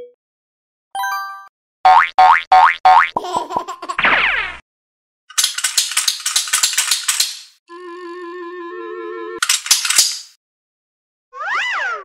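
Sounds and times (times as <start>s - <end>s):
cartoon boing effects: 1.9s - 3.2s.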